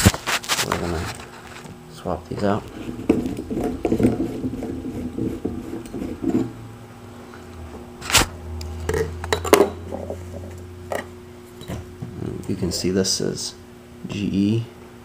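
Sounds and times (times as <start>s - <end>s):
rustling handling noise: 0.0s - 6.5s
faint hum: 0.0s - 15.0s.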